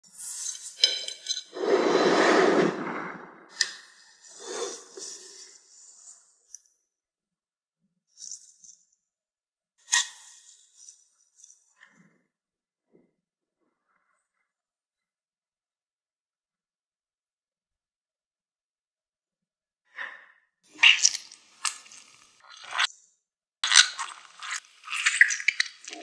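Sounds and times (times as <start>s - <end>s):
dishes clinking: 0.8s - 1.5s.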